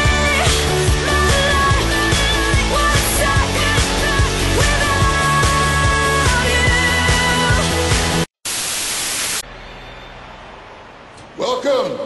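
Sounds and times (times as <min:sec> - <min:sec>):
music: 0:00.0 - 0:08.3
static hiss: 0:08.4 - 0:09.4.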